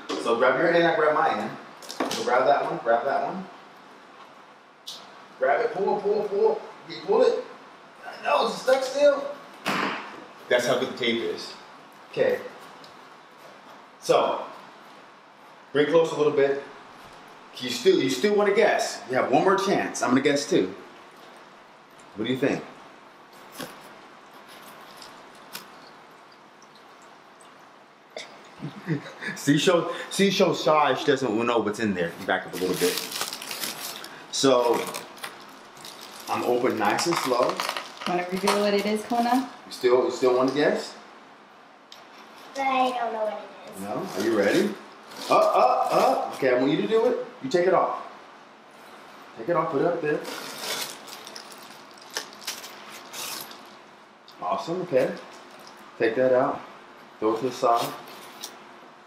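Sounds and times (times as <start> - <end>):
foil bag crinkling and rustling: 32.3 - 39.4, 44.0 - 46.2, 50.2 - 53.8.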